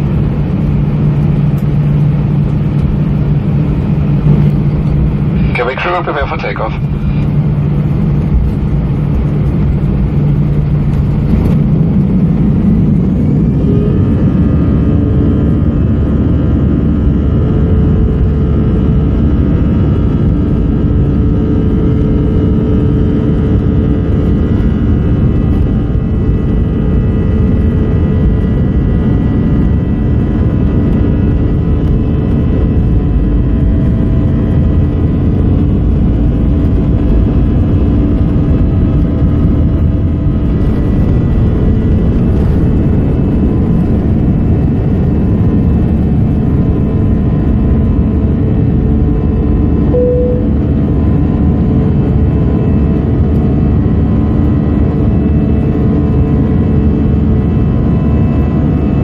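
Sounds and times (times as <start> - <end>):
jet engines whining and rumbling: 0.0 - 59.0.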